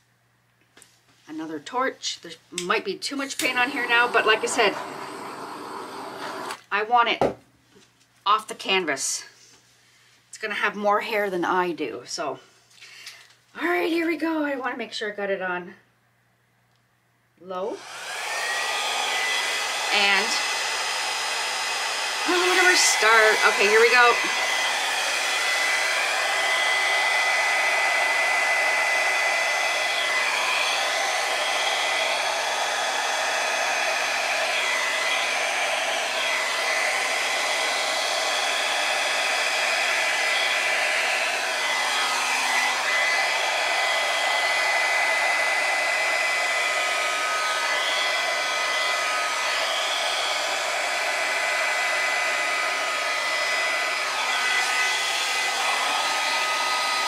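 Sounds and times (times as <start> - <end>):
hair dryer running: 2.6 - 6.8, 17.6 - 57.0.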